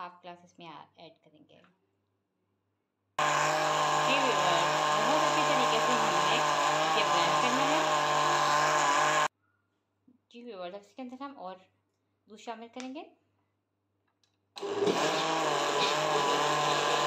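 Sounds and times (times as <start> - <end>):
blender running: 3.2 - 9.3, 14.6 - 17.0.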